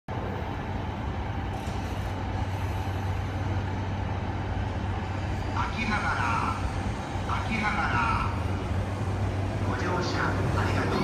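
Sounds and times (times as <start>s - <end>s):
electric train running hum: 0.1s - 11.0s.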